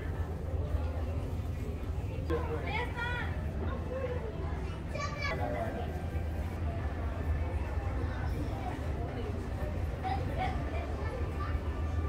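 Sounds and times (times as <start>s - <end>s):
low hum of store noise: 0.0s - 12.0s.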